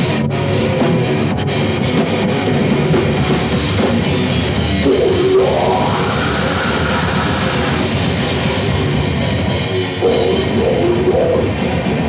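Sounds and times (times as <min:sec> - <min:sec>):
death metal band playing live: 0:00.0 - 0:12.0
held note climbing in pitch: 0:09.8 - 0:11.5.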